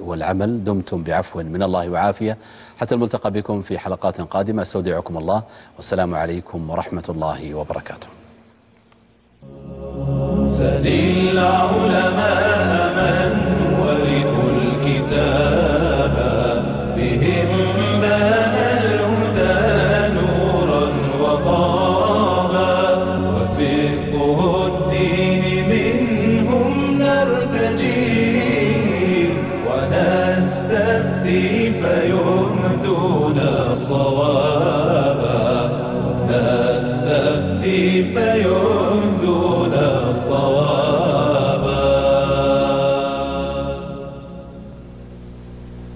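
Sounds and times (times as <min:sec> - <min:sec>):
low sustained tones: 0:09.4 - 0:37.8
voices chanting in layers: 0:09.4 - 0:44.5.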